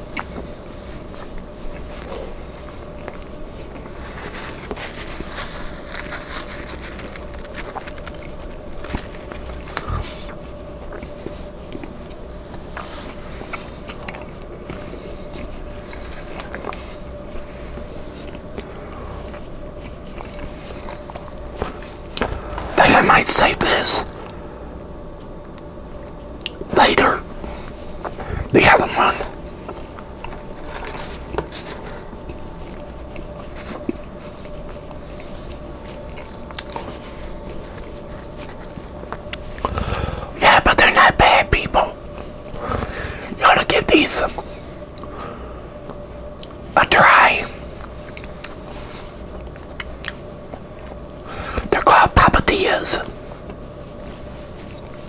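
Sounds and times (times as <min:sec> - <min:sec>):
faint steady hum: 0:00.0 - 0:55.0
man whispering: 0:09.7 - 0:10.4, 0:22.6 - 0:24.2, 0:26.6 - 0:29.5, 0:39.6 - 0:44.5, 0:46.7 - 0:47.7, 0:51.5 - 0:53.2.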